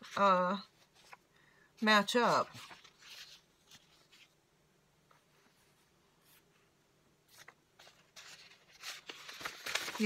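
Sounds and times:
paper rustling: 0.0s - 1.3s, 2.0s - 4.4s, 5.1s - 10.0s.

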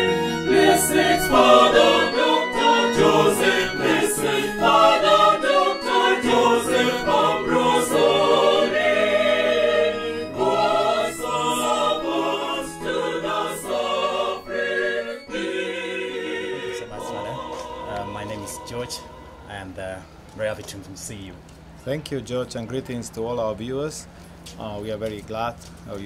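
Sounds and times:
choir singing: 0.0s - 19.8s.

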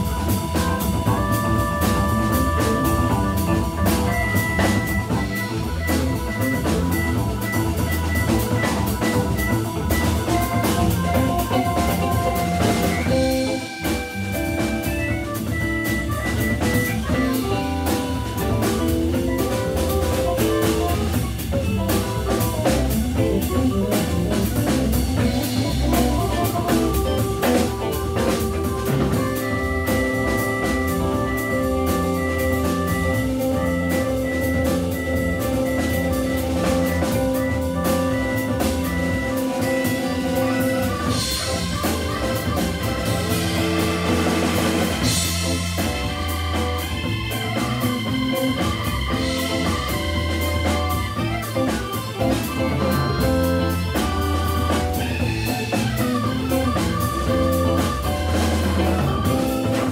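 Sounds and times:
drum kit: 0.0s - 59.9s
electric guitar: 0.0s - 59.9s
organ: 0.0s - 59.9s.

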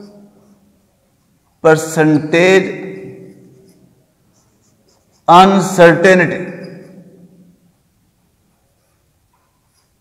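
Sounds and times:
marker pen writing on whiteboard: 0.0s - 7.5s, 8.2s - 10.0s
person speaking: 1.6s - 7.6s.

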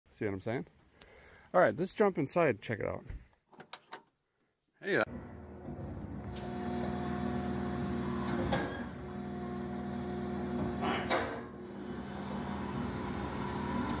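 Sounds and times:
engine from television speakers: 5.1s - 14.0s.

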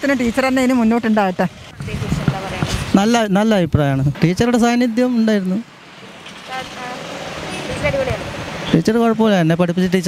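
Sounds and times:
passing road traffic: 0.0s - 10.0s
man speaking: 2.9s - 5.7s, 8.7s - 10.0s.

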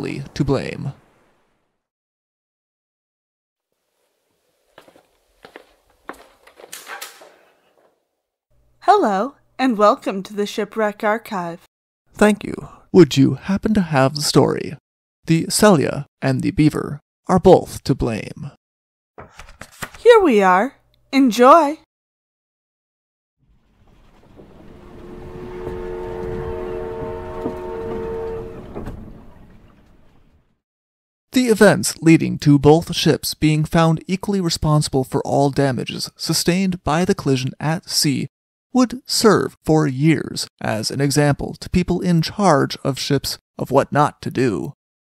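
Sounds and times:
soft footsteps: 3.9s - 8.0s
scuffing step: 4.7s - 8.0s
steam whistle blast: 24.6s - 29.4s.

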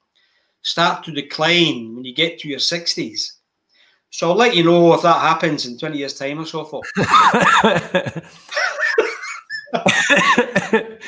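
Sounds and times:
men laughing: 6.8s - 11.0s.

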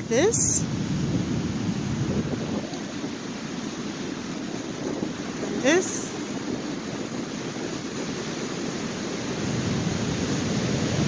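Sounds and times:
ocean surf washing on beach: 0.0s - 11.0s
wind buffeting microphone: 0.0s - 11.0s.

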